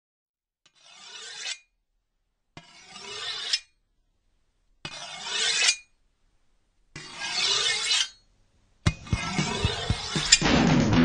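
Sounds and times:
rasping scraping noise: 0:00.7 - 0:01.6, 0:02.6 - 0:03.7, 0:04.9 - 0:05.9, 0:07.0 - 0:08.2, 0:08.9 - 0:11.0.

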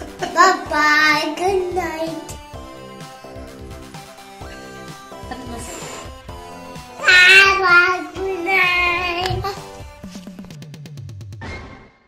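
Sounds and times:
music: 0:00.0 - 0:12.0
child singing high notes: 0:07.0 - 0:09.6.

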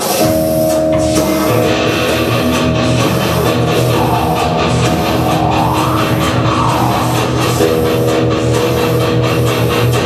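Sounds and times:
steady drum beat: 0:00.0 - 0:10.0
electric guitar chords: 0:00.2 - 0:10.0
pulsing bass line: 0:00.2 - 0:10.0.

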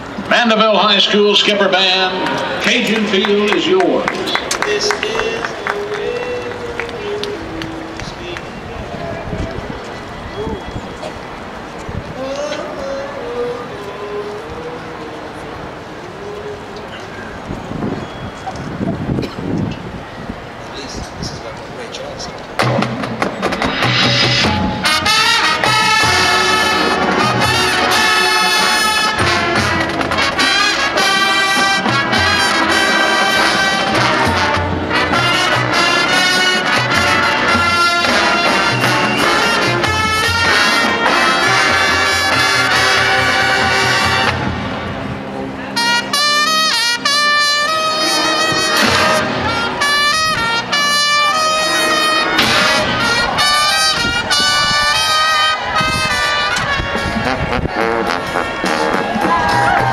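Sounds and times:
marching band brass music: 0:00.0 - 0:10.4, 0:22.6 - 0:59.9
percussion: 0:22.4 - 0:44.7, 0:51.3 - 0:59.9.

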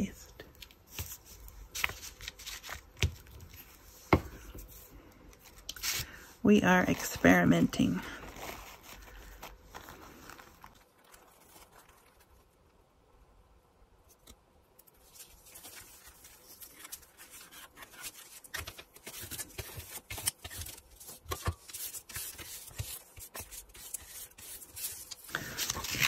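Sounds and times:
tool rubbing and scraping paper: 0:15.1 - 0:26.0.

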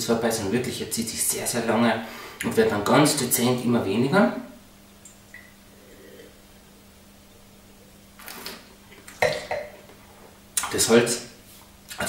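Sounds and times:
wine slurping from a glass: 0:08.2 - 0:09.2.

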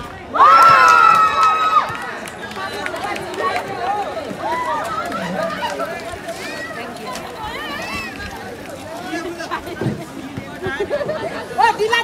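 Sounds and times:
people calling out and chatting: 0:00.0 - 0:12.0.

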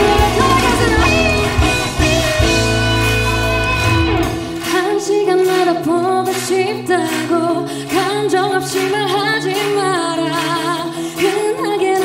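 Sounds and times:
woman singing pop song: 0:00.0 - 0:03.0, 0:04.6 - 0:12.0
band accompaniment: 0:00.0 - 0:04.9.

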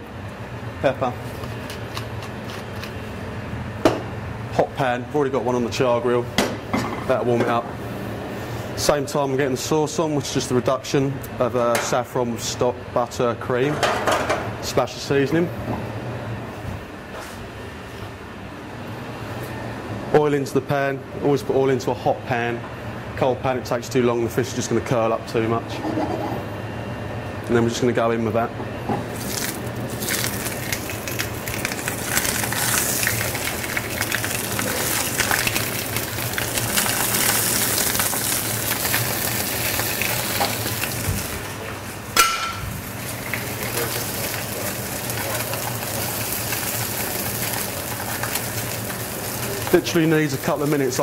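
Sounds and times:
steady rushing kitchen noise: 0:00.0 - 0:51.0
fish sizzling in hot oil: 0:29.1 - 0:41.5, 0:43.0 - 0:51.0.

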